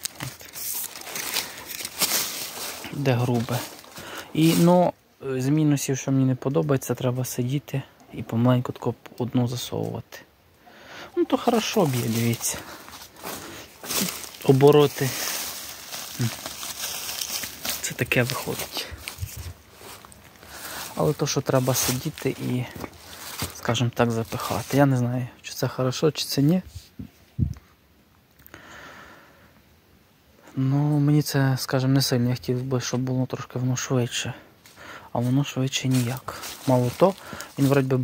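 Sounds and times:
dry corn stalks rustling: 0.0 - 6.0, 11.1 - 25.4, 32.4 - 38.0
person speaking: 0.0 - 26.8, 35.1 - 38.0.

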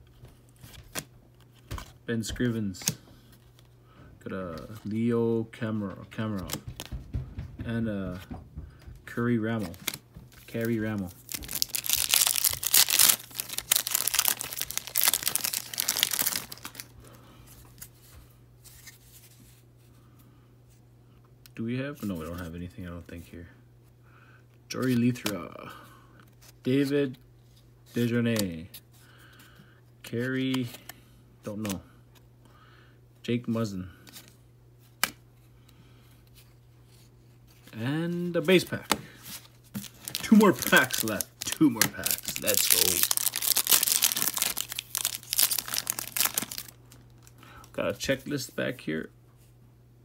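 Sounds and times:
cards being handled: 5.7 - 7.0, 9.1 - 16.9, 17.5 - 19.6, 24.7 - 25.5, 26.2 - 28.8, 30.1 - 31.8, 36.3 - 47.4
foil wrapper tearing and crinkling: 9.8 - 16.9, 39.8 - 47.3.

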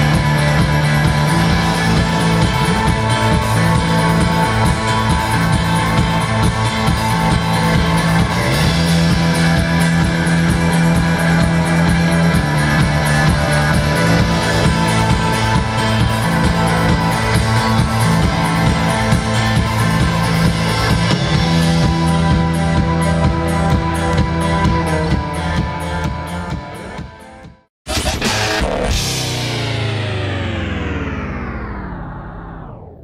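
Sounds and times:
rock band playing live: 0.0 - 30.8.

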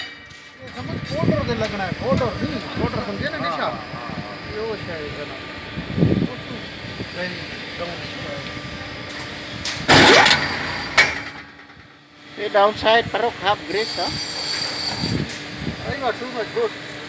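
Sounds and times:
steady tones: 0.0 - 14.1
machine hum: 0.0 - 17.0.

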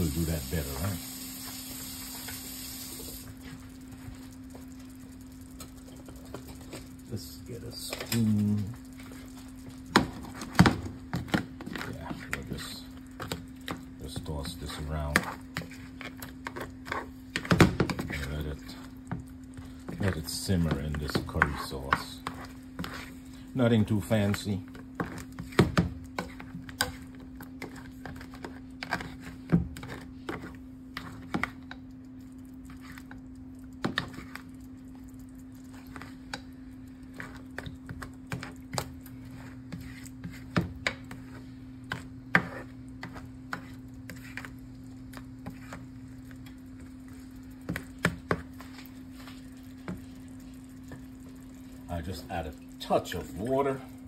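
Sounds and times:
curry sauce simmering and popping: 1.2 - 54.0.

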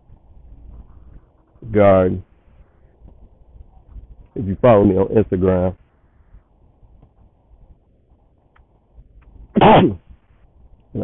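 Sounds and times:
man coughing: 9.6 - 10.0.

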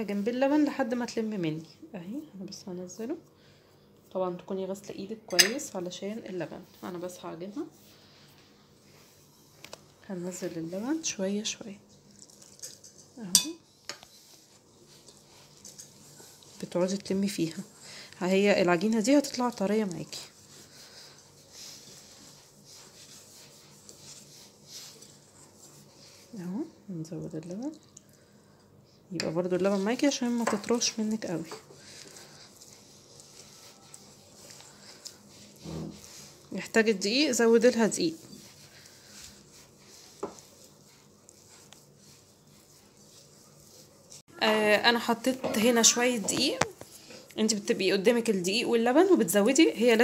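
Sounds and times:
clink against glass bowl: 5.3 - 5.6, 13.3 - 13.6
faint handling sounds: 5.3 - 44.3.

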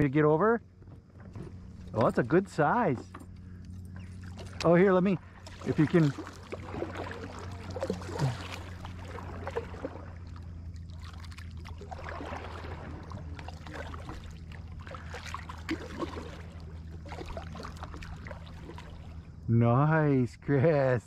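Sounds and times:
steady low hum: 0.0 - 21.0
paddle splashing in water: 0.9 - 19.4.

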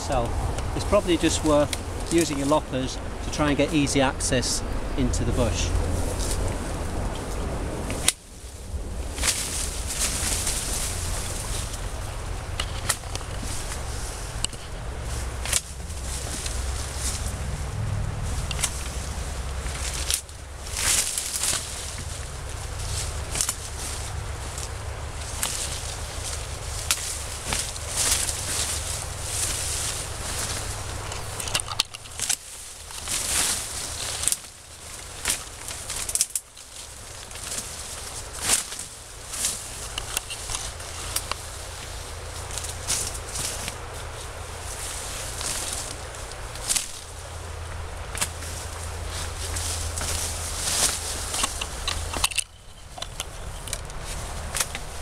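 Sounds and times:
rustling leaves and twigs: 0.0 - 55.0
loppers snipping branches: 6.1 - 8.2, 9.2 - 17.5, 18.3 - 55.0.

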